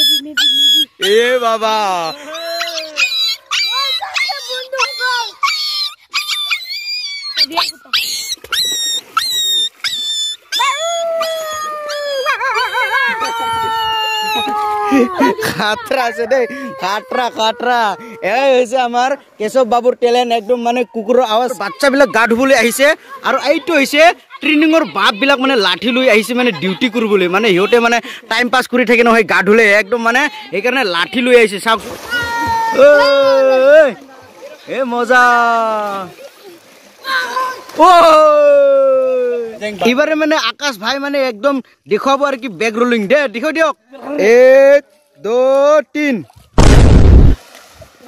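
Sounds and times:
boy imitating dog howl: 2.0s - 8.2s, 10.5s - 18.6s, 32.1s - 34.0s, 37.1s - 39.5s
young person calling out: 14.9s - 18.4s.

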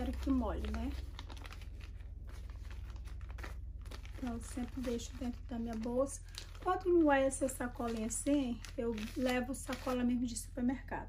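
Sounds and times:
plastic bags crinkling: 0.0s - 10.5s.

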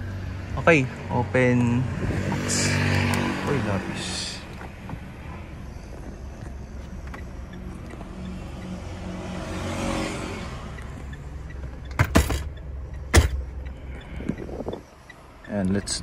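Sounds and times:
diesel engine idling: 0.0s - 16.0s
sharp knocks: 11.9s - 13.5s.

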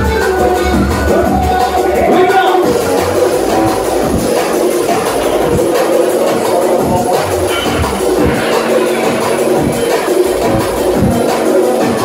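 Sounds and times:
drum and bass music: 0.0s - 12.0s.

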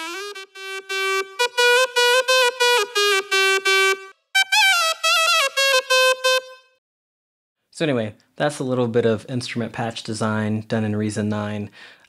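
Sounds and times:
synthesized reed melody: 0.0s - 6.7s.

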